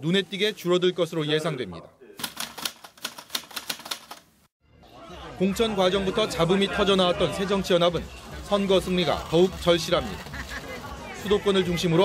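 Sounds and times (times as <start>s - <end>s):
typewriter key clicks: 2.2s - 4.2s.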